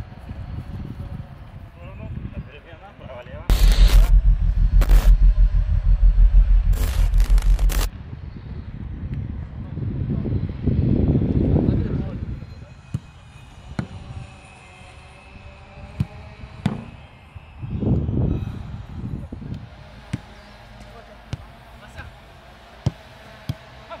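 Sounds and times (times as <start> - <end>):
low rumble: 3.5 - 8.2.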